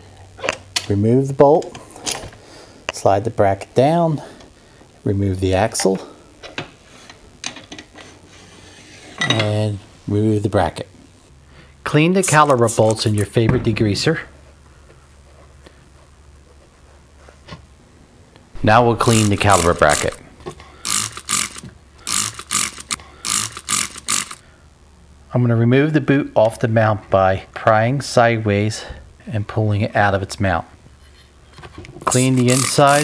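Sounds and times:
spray bottle hissing bursts: 32.1 - 33.0.

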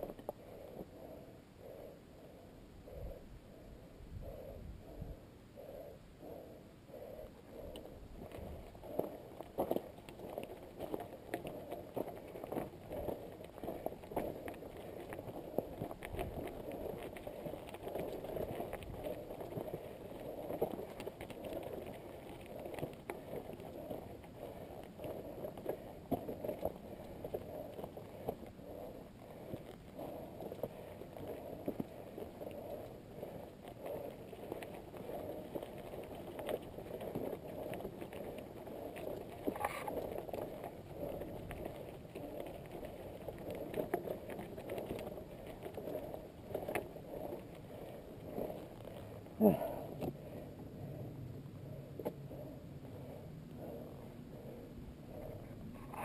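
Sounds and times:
bike tyres rumbling on gravel: 8.2 - 50.3.

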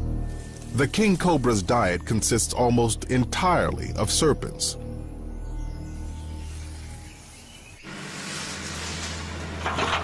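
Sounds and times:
forest ambience hiss: 0.0 - 2.4, 5.9 - 9.6.

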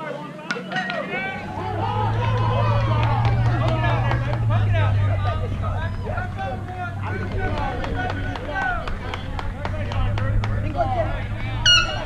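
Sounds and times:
people talking and calling out: 0.0 - 12.0
steady low hum: 1.2 - 12.0.

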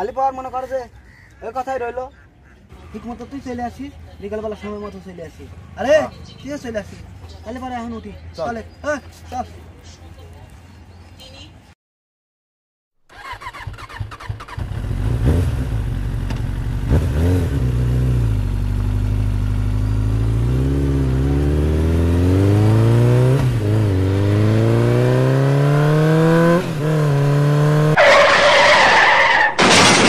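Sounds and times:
motorcycle engine accelerating: 13.1 - 28.0
loud harsh screeching: 28.0 - 30.0.

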